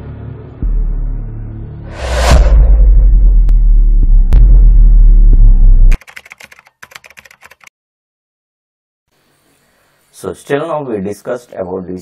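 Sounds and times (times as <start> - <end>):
deep intro music sting: 0.0 - 6.0
keyboard typing clicks: 5.9 - 7.7.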